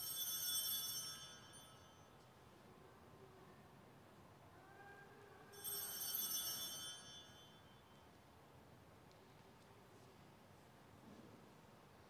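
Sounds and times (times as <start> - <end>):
small bells jingling: 0.0 - 2.2, 5.5 - 8.0.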